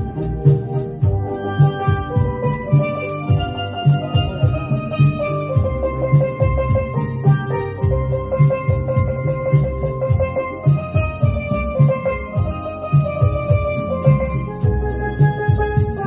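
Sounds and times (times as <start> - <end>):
low pulsing beat: 0.0 - 16.0
maracas shaking: 0.0 - 16.0
steel pan melody: 0.0 - 16.0.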